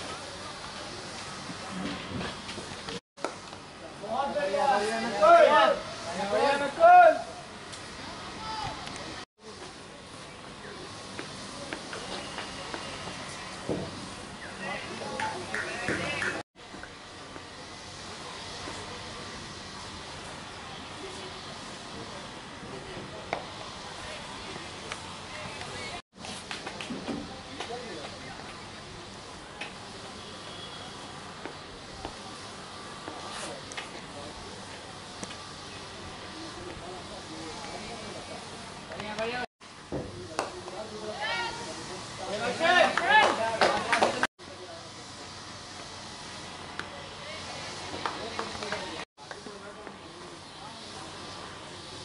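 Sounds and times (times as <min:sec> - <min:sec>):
faint distant voices: 0:00.0 - 0:52.0
open-field hiss: 0:00.0 - 0:52.0
players shouting and calling: 0:04.3 - 0:07.5, 0:41.0 - 0:44.3
sharp claps: 0:15.2 - 0:16.4, 0:40.3 - 0:40.8, 0:42.9 - 0:44.3.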